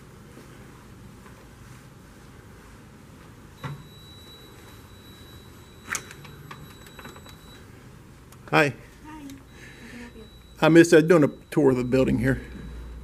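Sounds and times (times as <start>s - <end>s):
low room hum: 0.0s - 13.0s
high-pitched electronic beep: 9.5s - 13.0s.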